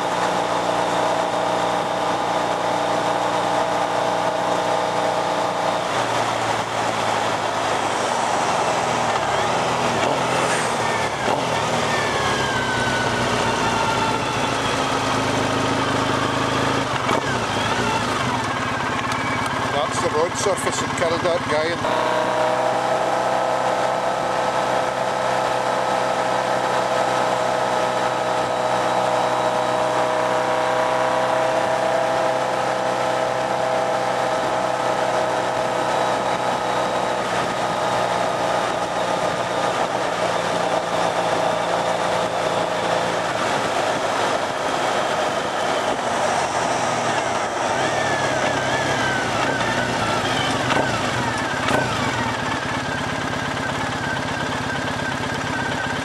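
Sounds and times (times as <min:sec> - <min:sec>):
motorcycle engine running: 0:00.0 - 0:56.0
wind and road rush: 0:00.0 - 0:56.0.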